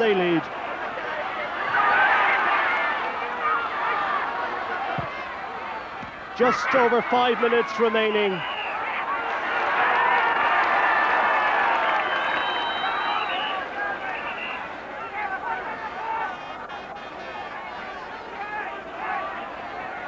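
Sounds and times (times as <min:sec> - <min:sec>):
stadium crowd shouting: 0:00.0 - 0:20.0.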